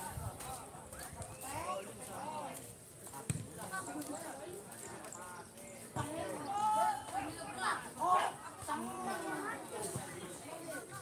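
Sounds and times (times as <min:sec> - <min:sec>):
voices calling and shouting: 0:00.0 - 0:11.0.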